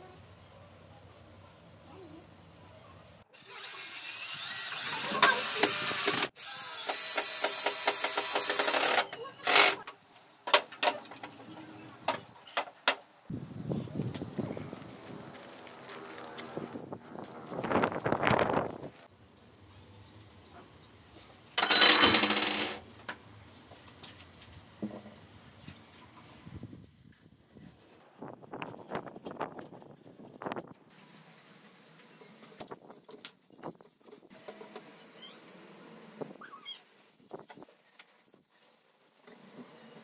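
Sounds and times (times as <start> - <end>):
cordless drill driving a screw: 3.4 - 9.8
metallic jingling clatter: 21.6 - 22.8.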